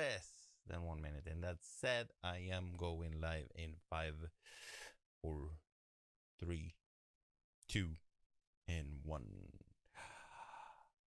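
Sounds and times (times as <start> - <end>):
man exhaling softly: 10.0 - 10.9.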